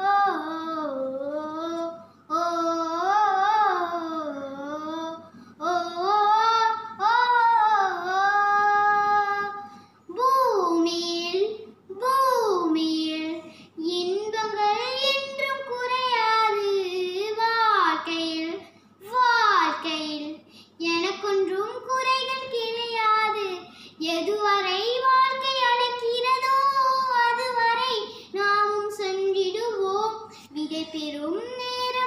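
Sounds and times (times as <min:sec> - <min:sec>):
girl singing unaccompanied: 0:00.0 - 0:32.0.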